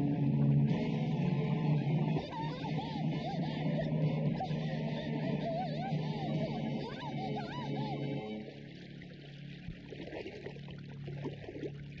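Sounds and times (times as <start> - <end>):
low steady hum: 0.0 - 12.0
water bubbling: 0.0 - 12.0.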